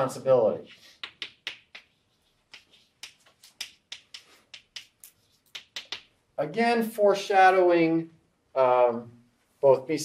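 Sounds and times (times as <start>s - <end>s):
chalk tapping on blackboard: 0.8s - 6.1s.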